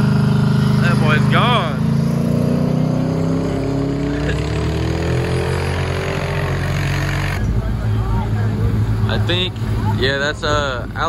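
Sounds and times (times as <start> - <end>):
drag racing car engine at full throttle: 0.0 - 11.0.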